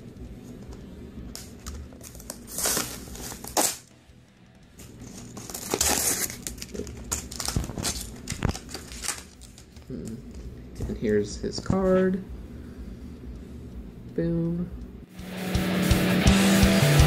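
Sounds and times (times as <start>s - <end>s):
plastic bags crinkling: 1.7s - 3.9s, 4.9s - 10.1s.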